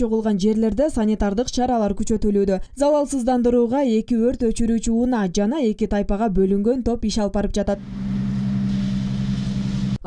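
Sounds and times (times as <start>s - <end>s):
truck engine and pump humming: 7.8s - 10.0s.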